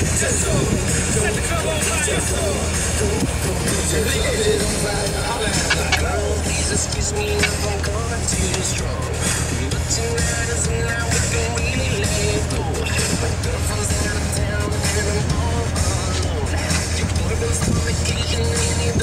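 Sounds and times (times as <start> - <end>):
car engine rumbling: 0.0 - 19.0
music playing: 0.0 - 19.0.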